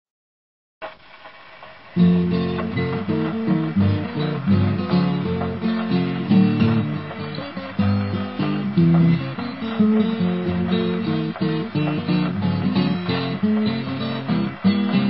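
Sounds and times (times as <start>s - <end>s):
faint hiss: 0.8s - 15.0s
acoustic guitar blues: 2.0s - 15.0s.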